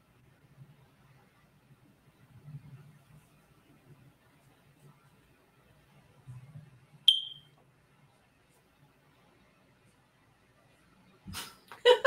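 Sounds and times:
short high-pitched ping: 0:07.1 - 0:07.5.

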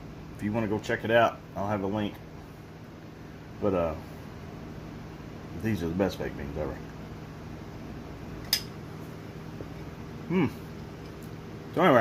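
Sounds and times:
fan humming: 0:00.0 - 0:12.0.

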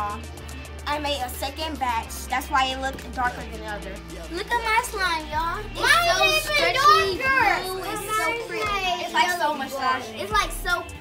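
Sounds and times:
young children talking: 0:04.2 - 0:11.0.

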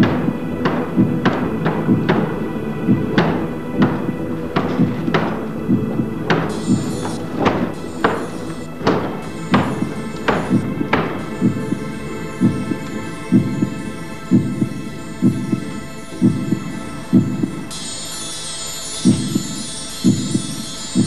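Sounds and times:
heartbeat-like double thumps: 0:00.0 - 0:17.9, 0:19.0 - 0:21.0
high shimmering chimes: 0:00.0 - 0:21.0
steady sustained drone: 0:00.0 - 0:21.0.

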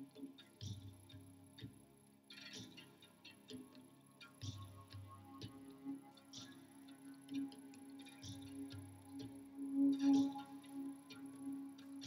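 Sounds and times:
slow ambient music: 0:00.0 - 0:12.0.

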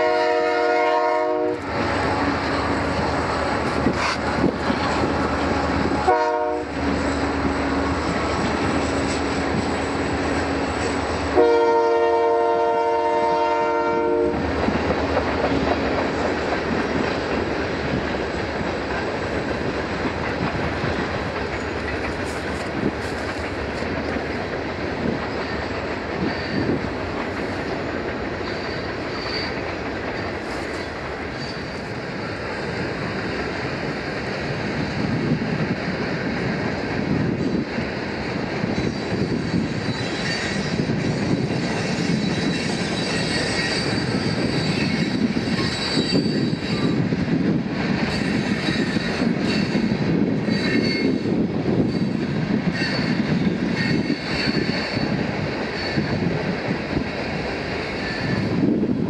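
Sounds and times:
locomotive horn: 0:00.0 - 0:08.0, 0:11.3 - 0:14.4
freight train cars rumbling: 0:00.0 - 0:59.0
wheels clattering over rail joints: 0:14.6 - 0:31.9.

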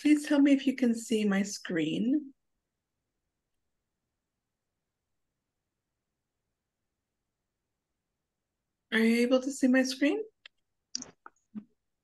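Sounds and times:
person speaking: 0:11.0 - 0:11.7.

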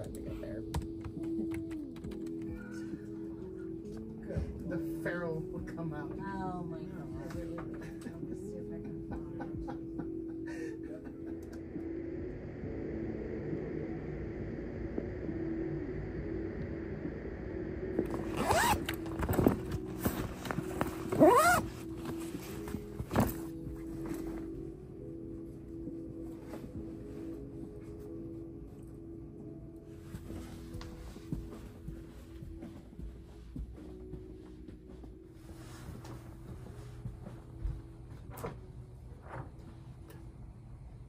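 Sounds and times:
zipper pulled on bag: 0:18.1 - 0:19.0, 0:21.0 - 0:21.9
bag rustling and clicking: 0:18.1 - 0:23.6.

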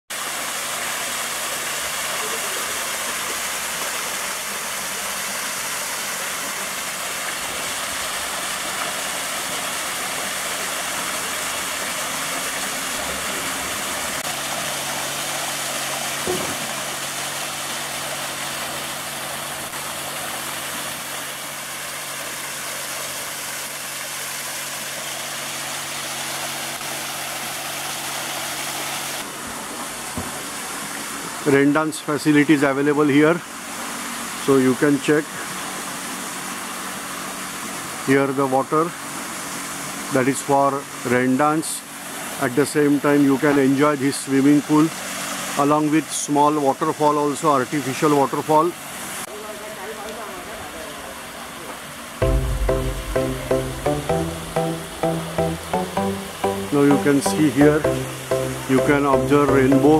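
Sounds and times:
waterfall splashing into pool: 0:00.1 - 0:59.9.

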